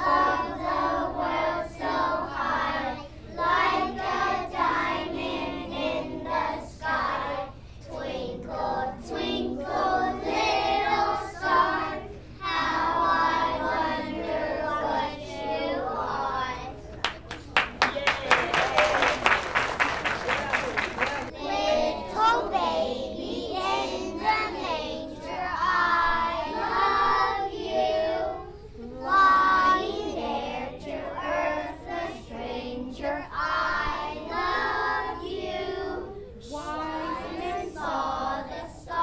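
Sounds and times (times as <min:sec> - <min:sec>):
children singing a carol: 0:00.0 - 0:16.9, 0:21.3 - 0:39.0.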